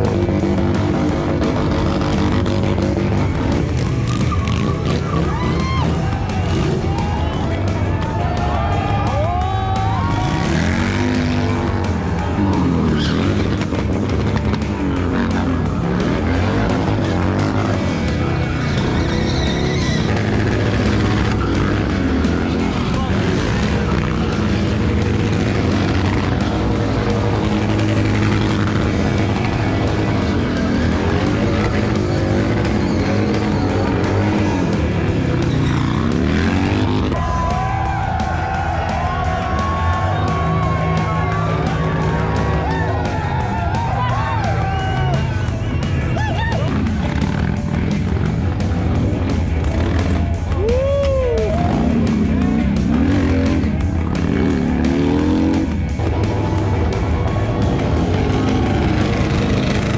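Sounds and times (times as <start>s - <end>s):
motorcycle engine revving: 0.0s - 59.9s
music: 0.0s - 59.9s
tyres skidding on asphalt: 0.0s - 59.9s.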